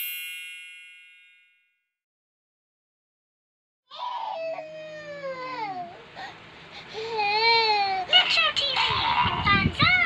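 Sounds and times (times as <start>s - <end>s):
baby crying: 3.9s - 6.1s.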